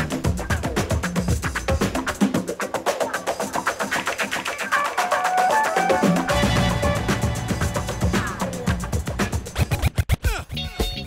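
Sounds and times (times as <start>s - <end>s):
turntable scratching: 0.0s - 10.3s
hip-hop beat: 0.0s - 11.0s.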